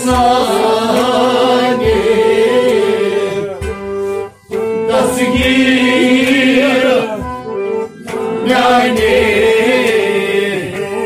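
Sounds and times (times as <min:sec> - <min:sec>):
man singing devotional song: 0:00.0 - 0:03.8, 0:04.9 - 0:07.4, 0:08.0 - 0:11.0
instrumental accompaniment: 0:00.0 - 0:11.0
low beat: 0:00.0 - 0:11.0.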